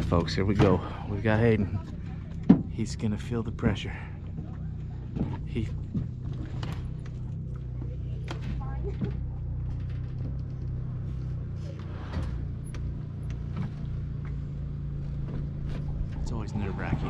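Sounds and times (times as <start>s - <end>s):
engine idling: 0.0s - 17.0s.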